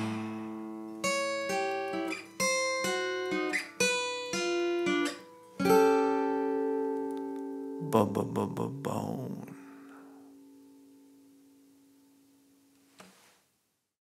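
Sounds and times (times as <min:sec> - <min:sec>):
acoustic guitar notes and chords: 0:00.0 - 0:13.1.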